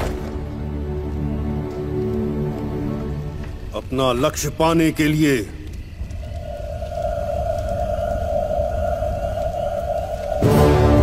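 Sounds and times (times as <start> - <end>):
low rumble: 5.5 - 11.0.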